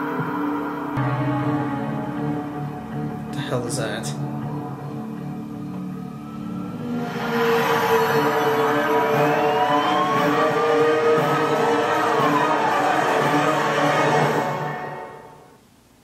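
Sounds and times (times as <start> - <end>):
gliding pitches: 0.0 - 15.4
tense drama score: 0.0 - 15.6.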